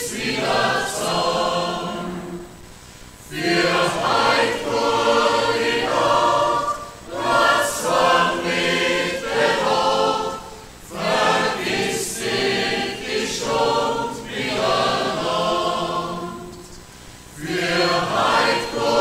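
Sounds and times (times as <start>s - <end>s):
mixed choir singing a folk song: 0.0s - 19.0s.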